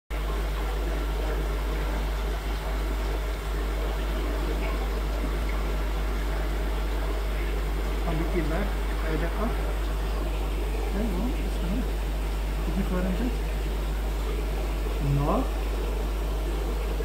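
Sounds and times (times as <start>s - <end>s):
bubbling water rushing: 0.1s - 17.0s
constant low hum: 0.1s - 17.0s.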